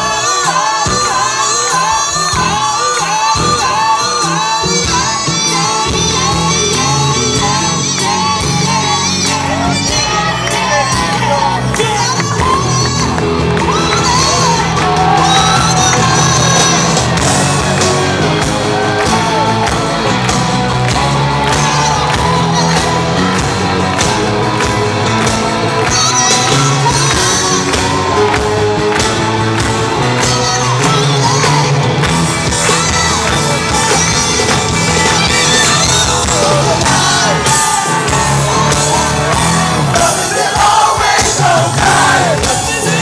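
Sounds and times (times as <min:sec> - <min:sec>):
bass: 0:00.0 - 0:43.0
person singing: 0:00.0 - 0:43.0
drum kit: 0:04.7 - 0:43.0
audience shouting and whooping: 0:08.9 - 0:43.0.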